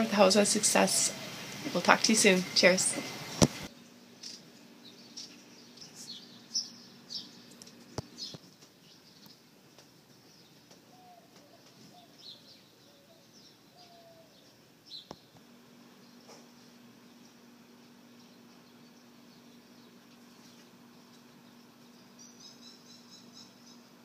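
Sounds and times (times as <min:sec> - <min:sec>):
birds chirping: 0:00.0 - 0:24.0
lower bird calls: 0:10.3 - 0:15.3, 0:16.0 - 0:24.0.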